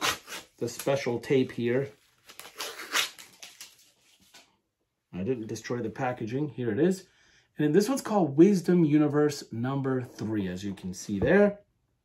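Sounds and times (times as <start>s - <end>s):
tape ripping: 0.0s - 1.2s, 2.2s - 4.4s
tape crackling: 0.0s - 4.5s.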